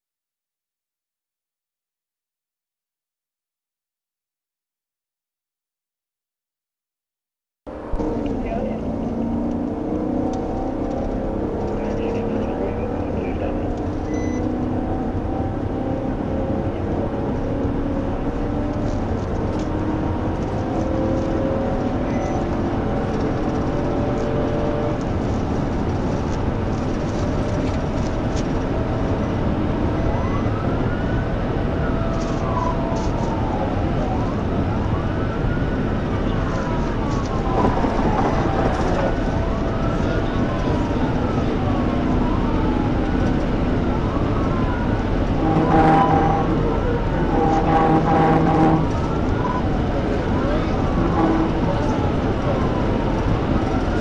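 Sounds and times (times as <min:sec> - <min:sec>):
car engine tyre and wind noise: 0:07.7 - 0:54.0
police siren wailing: 0:07.7 - 0:54.0.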